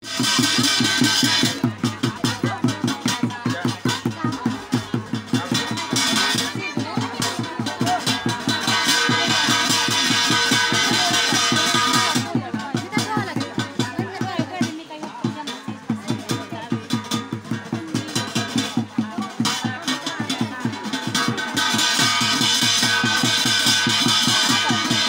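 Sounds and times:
fast even drumbeat: 0.0s - 25.0s.

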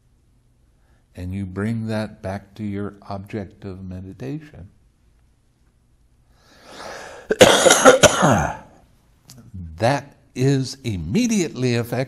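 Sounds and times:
breath in: 6.3s - 7.4s
man coughing: 7.0s - 8.8s.

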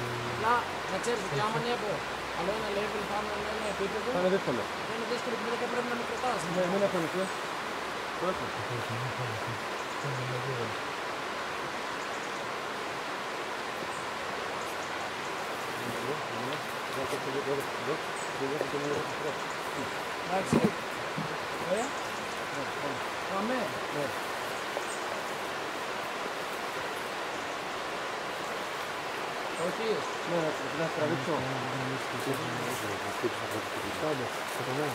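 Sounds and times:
man murmuring: 0.0s - 0.5s, 1.3s - 1.9s, 8.7s - 10.7s
stream water rushing: 0.0s - 34.9s.

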